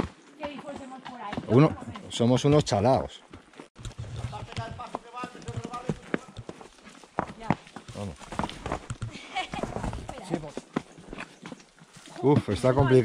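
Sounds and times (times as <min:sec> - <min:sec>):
hooves clopping on stones: 0:00.0 - 0:13.0.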